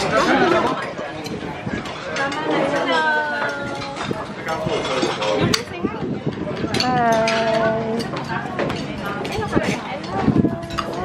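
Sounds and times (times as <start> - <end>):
voices at dining table: 0.0 - 11.0.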